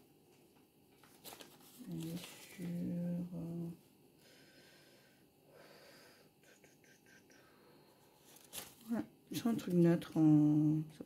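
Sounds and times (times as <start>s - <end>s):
soft breath: 4.2s - 8.4s.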